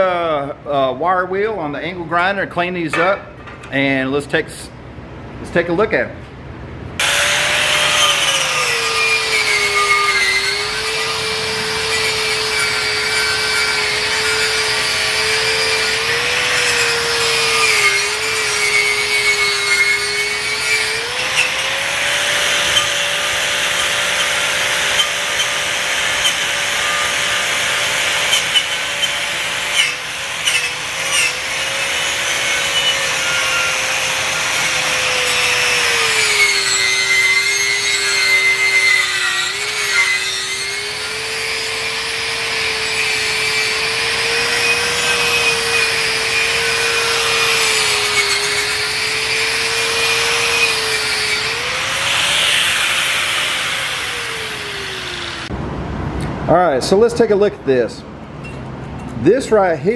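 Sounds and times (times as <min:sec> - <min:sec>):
angle grinder wire wheel brushing steel: 0:07.0 - 0:55.5.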